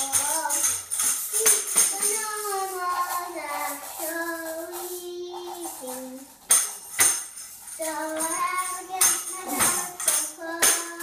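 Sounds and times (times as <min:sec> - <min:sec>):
child singing: 0:00.0 - 0:06.4, 0:07.8 - 0:11.0.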